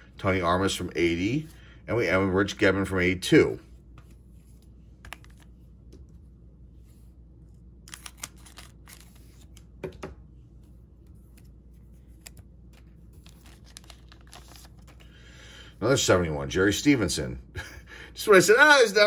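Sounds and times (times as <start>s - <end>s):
cards rustling and ticking: 3.9s - 6.2s, 7.5s - 9.8s, 10.8s - 15.2s
wrapper tearing and crinkling: 7.9s - 9.2s, 13.2s - 14.9s.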